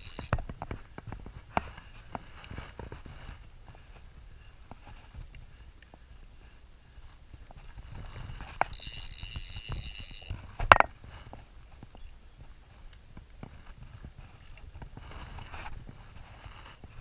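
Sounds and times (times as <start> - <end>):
fly reel ratchet buzzing: 0.0 - 17.0.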